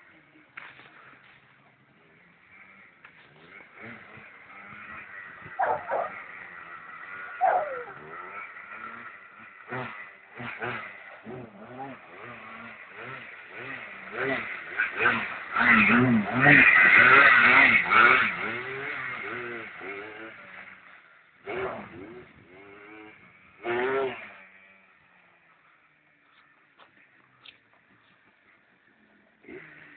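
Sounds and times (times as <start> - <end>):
distant quad engine droning: 0.0 - 29.9
short loud falling calls: 5.6 - 6.2, 7.3 - 8.1.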